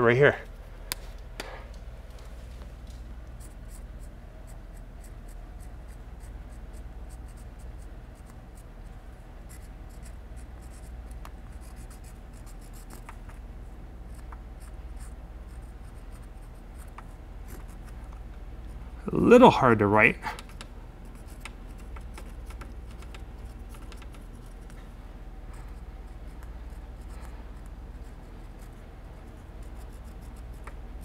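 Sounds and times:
pen scratching on brick wall: 3.3 - 13.4, 21.0 - 24.8, 25.6 - 30.8.

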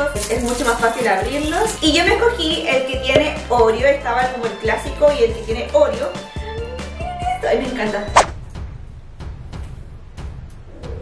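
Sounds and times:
short whoosh: 8.1 - 8.5.

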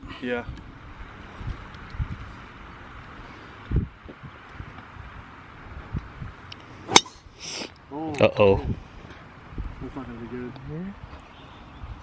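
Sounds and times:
outdoor hiss: 0.1 - 11.5
golf club striking ball: 6.9 - 7.3.

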